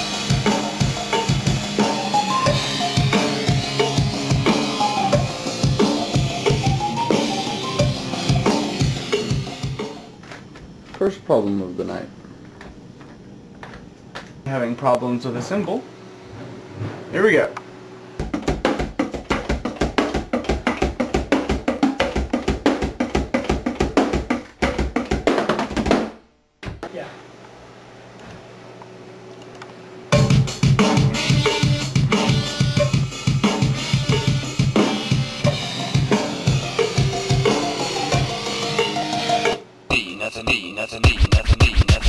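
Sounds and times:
fast drum pattern: 0:00.0 - 0:09.9, 0:18.2 - 0:26.2, 0:30.1 - 0:38.3, 0:40.0 - 0:42.0
heavy rock band music: 0:00.0 - 0:10.1, 0:30.2 - 0:39.6.

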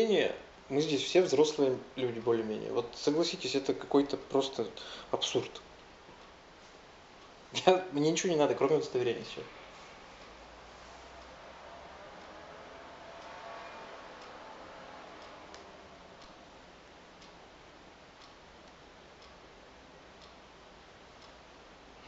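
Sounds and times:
low room murmur: 0:00.0 - 0:22.0
clock ticking: 0:07.0 - 0:22.0.

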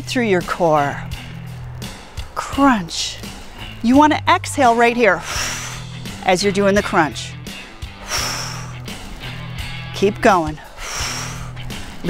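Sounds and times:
background music with bass line: 0:00.0 - 0:12.0
woman exhaling hard: 0:08.0 - 0:08.9.

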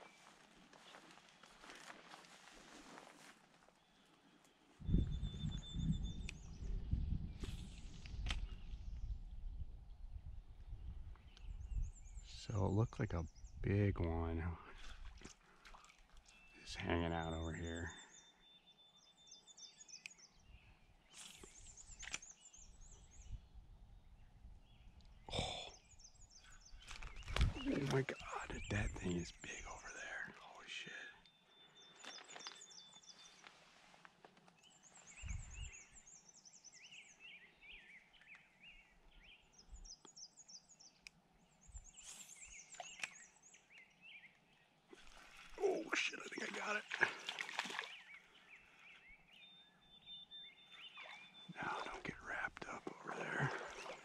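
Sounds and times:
songbirds singing: 0:00.0 - 0:01.9, 0:03.6 - 0:54.0
outdoor background noise: 0:00.0 - 0:54.0
bird chirping: 0:03.8 - 0:07.6, 0:16.2 - 0:33.6, 0:34.6 - 0:54.0.

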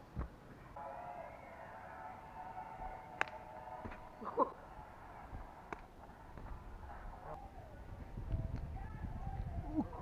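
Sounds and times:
dull thud of person landing: 0:03.8 - 0:04.1.

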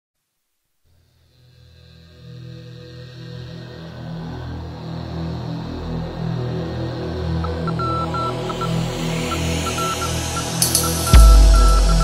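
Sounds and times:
electronic background music: 0:03.0 - 0:12.0.

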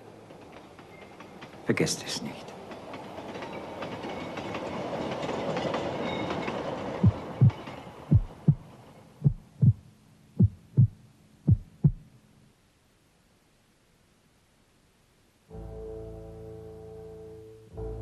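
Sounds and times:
train wagons rumbling on track: 0:00.0 - 0:09.5
heartbeat thumps: 0:07.0 - 0:09.8, 0:10.4 - 0:12.1.

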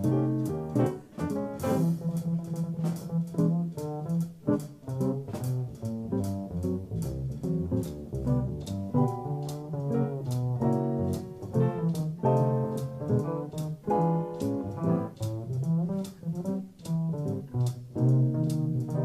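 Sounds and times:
drums keeping time: 0:00.0 - 0:19.0
jazz electric guitar solo: 0:00.0 - 0:19.0
plucked upright bass: 0:00.0 - 0:19.0.

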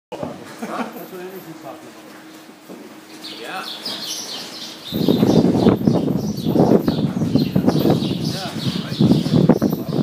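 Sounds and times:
loud rustling and rumbling: 0:01.5 - 0:10.0
small birds chirping: 0:03.0 - 0:10.0.

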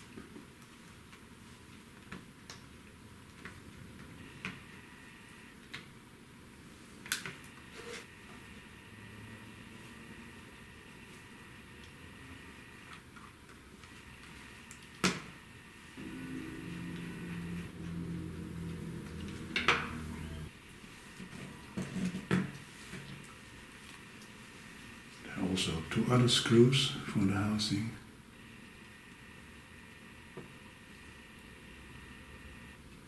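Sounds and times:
low steady hum: 0:15.4 - 0:33.0.

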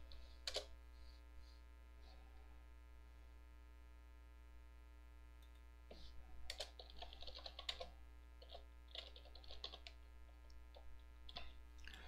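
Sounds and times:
typing on computer keyboard: 0:00.4 - 0:00.7, 0:06.5 - 0:10.0.

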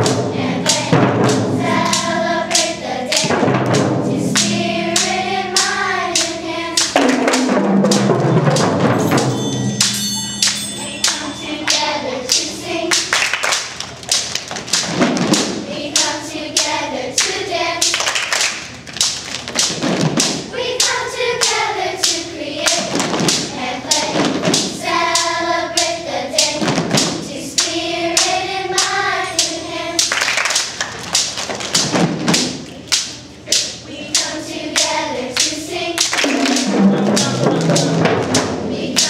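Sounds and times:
children singing in unison: 0:00.0 - 0:07.6, 0:11.0 - 0:13.2, 0:15.6 - 0:18.0, 0:20.5 - 0:30.1, 0:33.5 - 0:39.0
hand drum strikes: 0:00.0 - 0:11.3, 0:36.2 - 0:38.6
hands clapping: 0:09.8 - 0:20.4, 0:29.4 - 0:38.0.

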